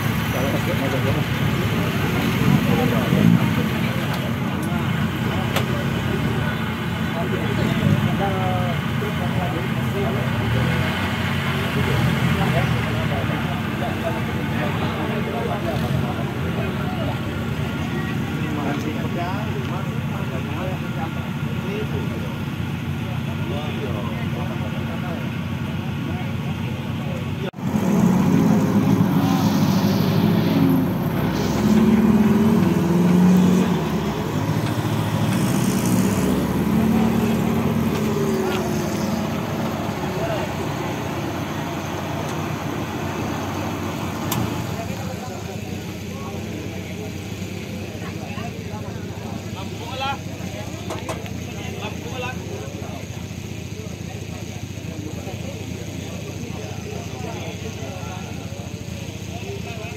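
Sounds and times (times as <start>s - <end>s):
off-road vehicle engine running: 0.0s - 59.9s
people's voices: 0.0s - 59.9s.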